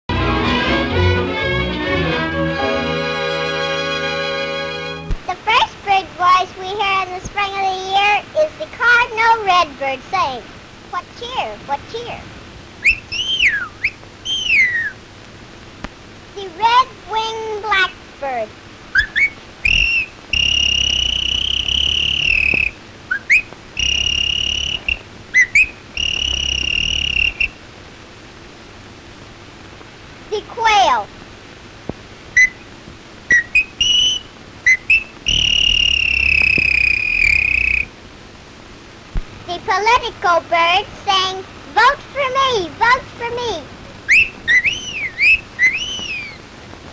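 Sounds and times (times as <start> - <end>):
girl whistling birdsong: 12.8 - 15.0, 19.0 - 27.6, 32.4 - 32.7, 33.3 - 37.9, 44.1 - 46.4.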